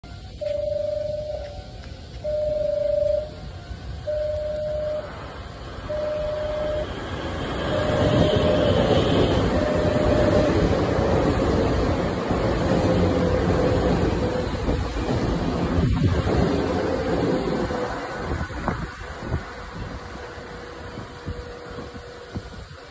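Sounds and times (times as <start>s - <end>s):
electric train rumbling: 0.0s - 22.9s
electronic warning tone beeping: 0.1s - 11.0s.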